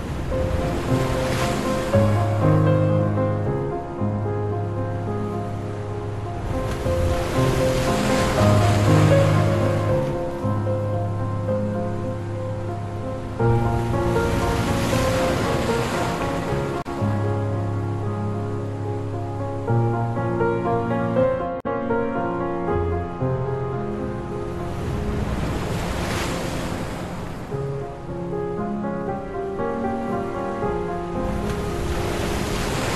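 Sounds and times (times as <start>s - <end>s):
ocean wave washing: 0.0s - 21.2s, 23.9s - 32.9s
slow relaxation music: 0.0s - 32.9s.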